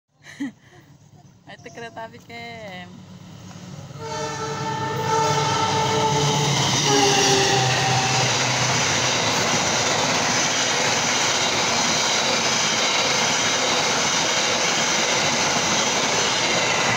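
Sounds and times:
train coaches running on track: 0:00.3 - 0:16.9
train horn: 0:03.9 - 0:09.4.

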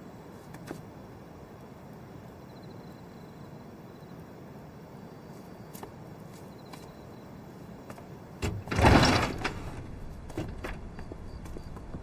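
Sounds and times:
door clunk: 0:08.4 - 0:12.0
door sliding rush: 0:08.4 - 0:12.0.

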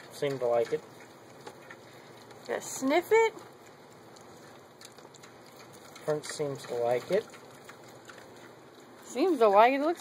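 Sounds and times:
pigs chewing: 0:00.0 - 0:10.0.

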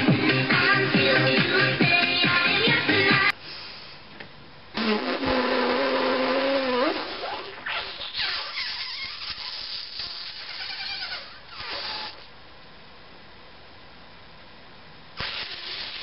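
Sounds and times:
person buzzing with lips: 0:04.8 - 0:12.3, 0:15.2 - 0:16.0.

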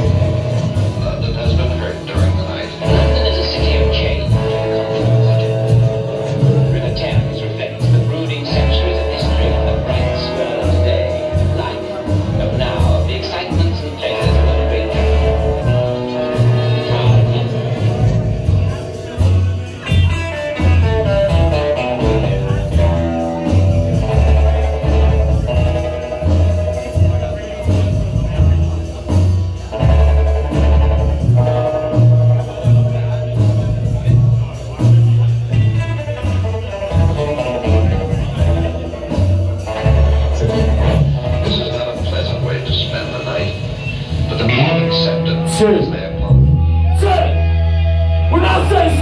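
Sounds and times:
electric guitars: 0:00.0 - 0:49.0
heavy bass line: 0:00.0 - 0:49.0
live rock band playing: 0:00.0 - 0:49.0.

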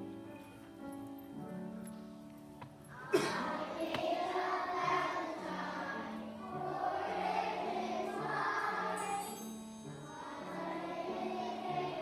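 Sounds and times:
instrumental accompaniment: 0:00.0 - 0:12.0
children's choir singing: 0:02.9 - 0:12.0.

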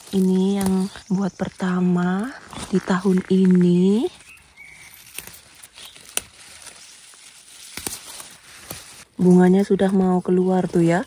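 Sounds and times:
plant stems snapping: 0:00.0 - 0:10.0
leaves rustling: 0:00.0 - 0:11.0.

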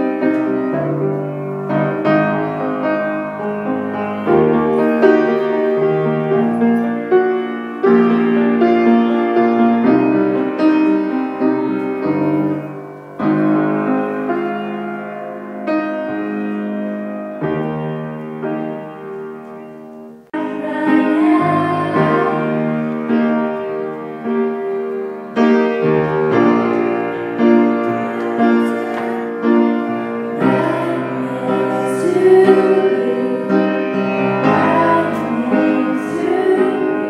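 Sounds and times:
grand piano chords: 0:00.0 - 0:37.0.

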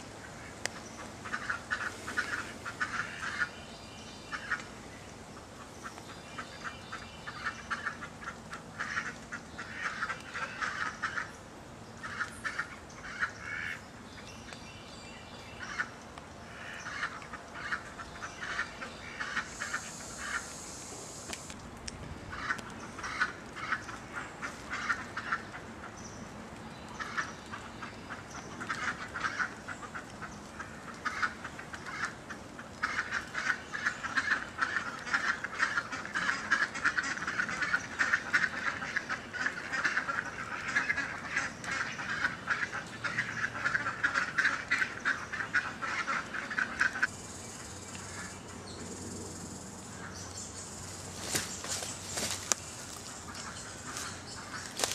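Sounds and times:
birds calling: 0:00.0 - 0:54.9.

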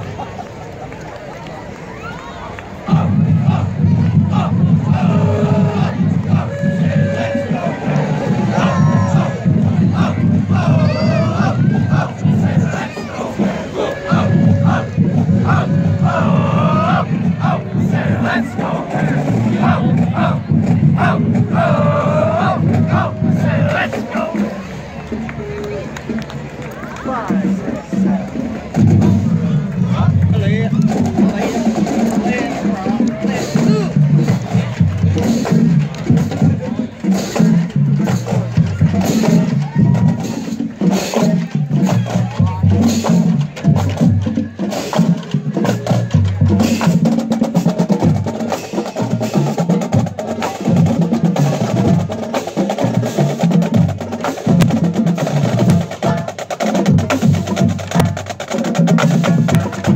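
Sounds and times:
crowd shouting and calling: 0:00.0 - 0:59.9.

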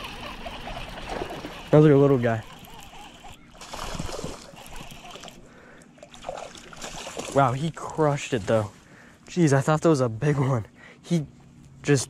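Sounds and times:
fish splashing at water surface: 0:00.0 - 0:07.8.

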